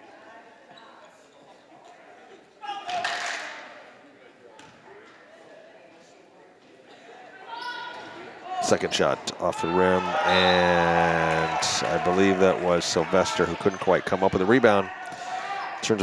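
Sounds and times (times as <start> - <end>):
crowd voices: 0.0 - 16.0
crowd shouting: 9.4 - 16.0.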